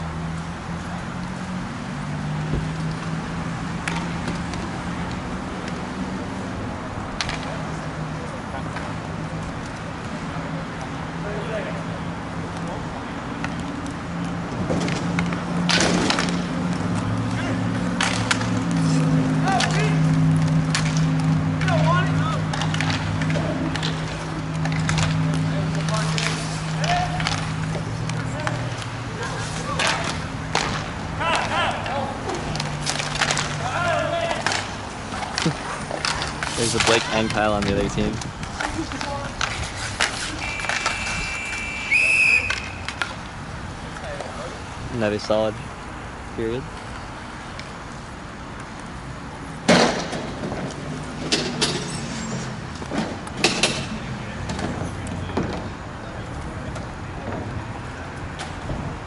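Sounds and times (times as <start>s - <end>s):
skate wheels rolling: 0.0s - 59.0s
knocks against rink boards: 14.6s - 16.5s, 17.3s - 18.6s, 19.5s - 28.9s, 29.6s - 41.0s, 49.6s - 51.8s
players shouting: 17.1s - 18.3s, 19.0s - 20.4s, 21.5s - 24.3s, 25.1s - 37.7s, 40.2s - 43.0s.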